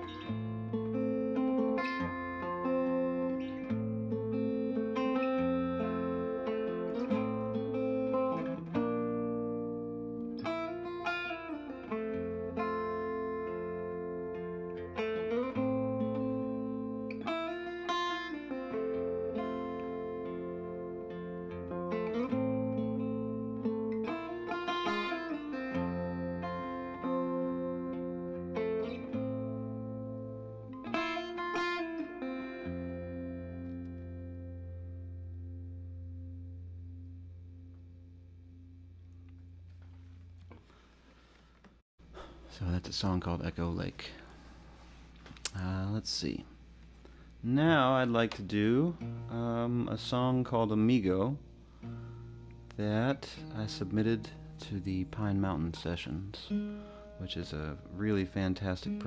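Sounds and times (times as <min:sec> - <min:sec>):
fingerstyle guitar playing: 0:00.0 - 0:41.3, 0:44.8 - 0:59.0.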